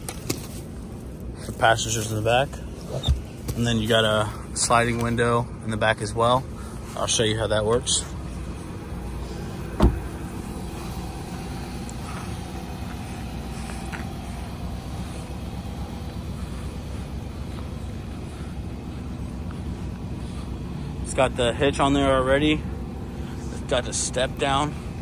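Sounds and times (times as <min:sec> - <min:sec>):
truck engine idling: 0:00.0 - 0:25.0
sharp thump: 0:09.7 - 0:10.2.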